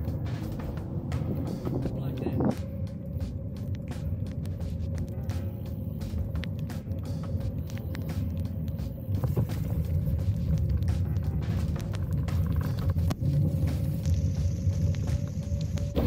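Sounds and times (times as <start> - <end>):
raindrops ticking on camera: 0.0 - 16.0
wind rumbling on microphone: 0.0 - 16.0
bicycle tyres on wet pavement: 3.2 - 16.0.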